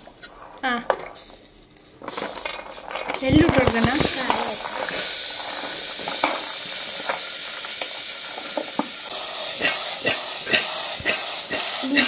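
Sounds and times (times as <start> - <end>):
spoon scraping steel bowl: 0.0 - 6.5
steady hiss: 0.0 - 12.0.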